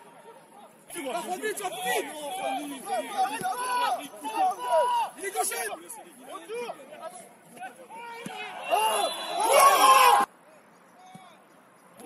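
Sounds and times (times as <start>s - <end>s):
men calling and shouting: 0.0s - 11.5s.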